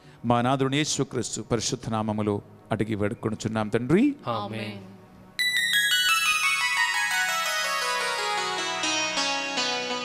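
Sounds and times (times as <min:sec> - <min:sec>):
harp-like electronic keyboard notes: 0:05.4 - 0:10.0.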